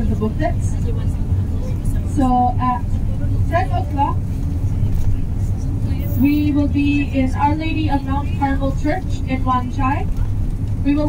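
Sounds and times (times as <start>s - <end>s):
bus engine rumble: 0.0s - 11.0s
road noise: 0.0s - 11.0s.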